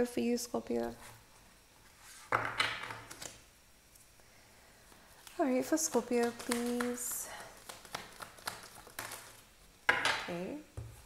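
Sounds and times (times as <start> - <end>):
cards being shuffled: 2.2 - 3.4, 5.2 - 9.5.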